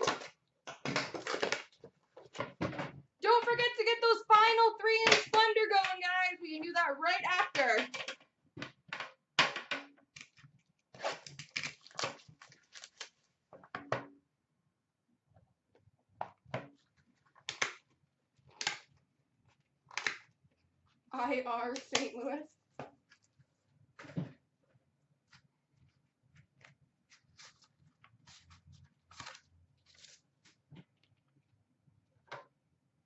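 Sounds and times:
person talking: 3.2s - 7.9s, 21.1s - 22.5s
card packs clicking and crinkling: 11.2s - 13.2s.

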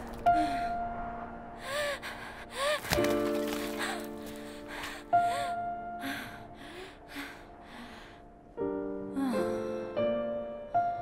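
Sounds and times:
sad film score music: 0.0s - 11.0s.

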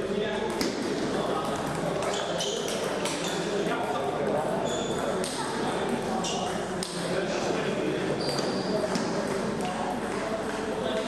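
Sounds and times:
table tennis balls clicking: 8.9s - 11.0s.

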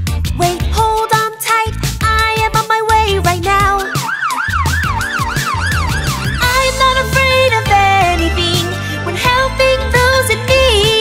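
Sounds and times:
backing music: 0.0s - 11.0s
ambulance siren wailing: 3.6s - 7.0s.

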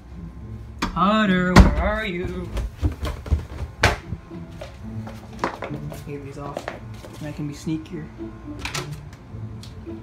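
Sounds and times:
soft footsteps: 1.8s - 7.5s.

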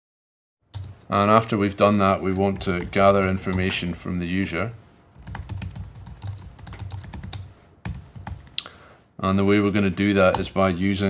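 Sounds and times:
typing on computer keyboard: 0.8s - 1.0s, 2.3s - 8.5s.

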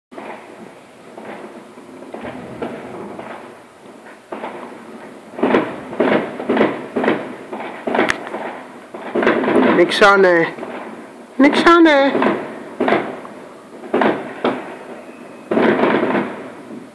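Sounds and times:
fireworks bangs: 1.1s - 11.0s, 11.6s - 16.8s.

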